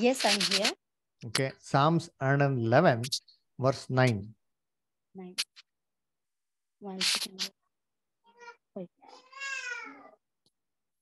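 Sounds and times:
cat meowing: 8.3s - 10.2s.

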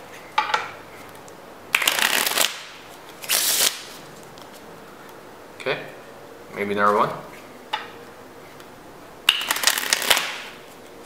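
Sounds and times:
playing cards riffle-shuffled: 1.8s - 4.7s, 9.3s - 11.0s.

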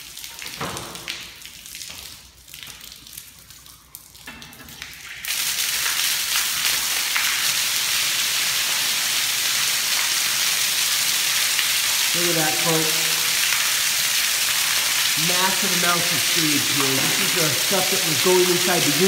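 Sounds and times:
sewage water pouring and splashing: 0.0s - 19.0s.

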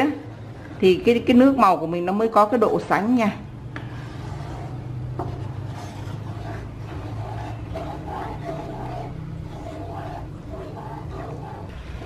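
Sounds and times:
steady low hum: 0.0s - 12.0s
spatula scraping sauce in wok: 3.8s - 12.0s.

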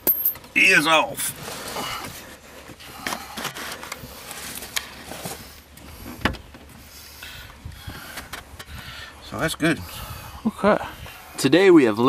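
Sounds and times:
hands handling car parts: 0.0s - 8.8s.

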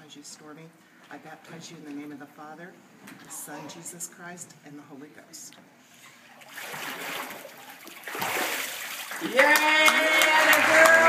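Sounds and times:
water splashing: 6.3s - 9.4s.

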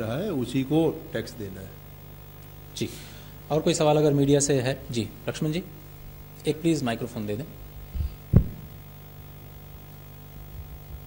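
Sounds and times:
steady low hum: 0.0s - 11.0s
microphone handling thumps: 7.8s - 9.0s.

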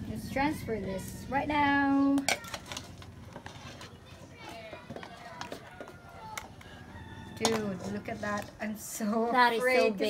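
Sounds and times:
metal utensils scraping a wok: 7.2s - 9.1s.

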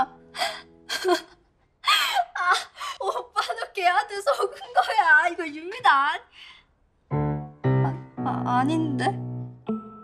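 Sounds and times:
woman gasping: 0.3s - 3.2s.

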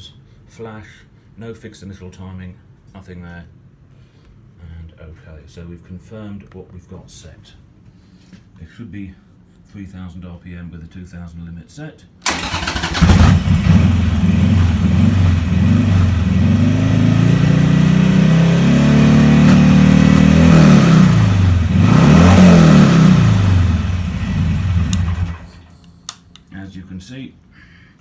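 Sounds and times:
motorcycle engine revving: 12.3s - 25.6s.

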